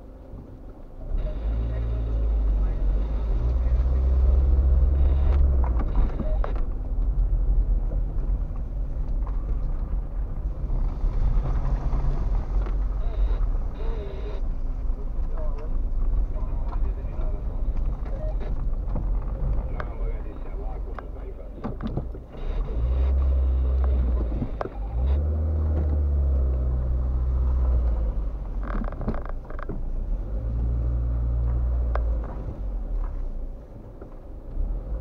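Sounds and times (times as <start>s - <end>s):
car engine rumble: 0.0s - 35.0s
tyre noise on rough road: 0.0s - 35.0s.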